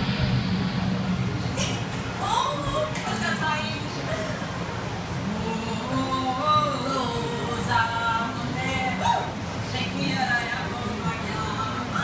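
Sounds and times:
low background rumble: 0:00.0 - 0:12.0
woman speaking: 0:02.2 - 0:04.4, 0:05.3 - 0:12.0.

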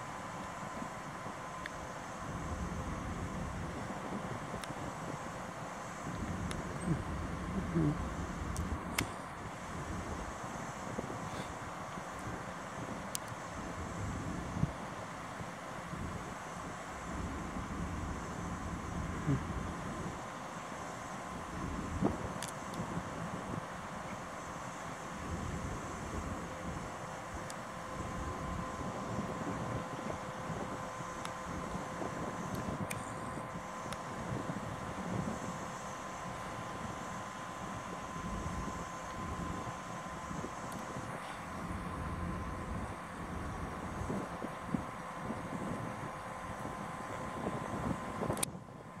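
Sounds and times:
diesel locomotive low drone: 0:00.0 - 0:49.0
faint steady whine: 0:00.0 - 0:49.0
faint clicks: 0:04.6 - 0:04.8, 0:06.1 - 0:06.6, 0:08.5 - 0:09.2, 0:13.1 - 0:13.4, 0:22.4 - 0:22.8, 0:32.5 - 0:33.2.

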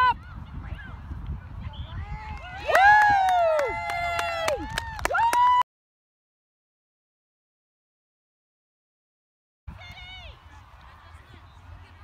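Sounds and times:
wind rumble on microphone: 0:00.0 - 0:05.6.

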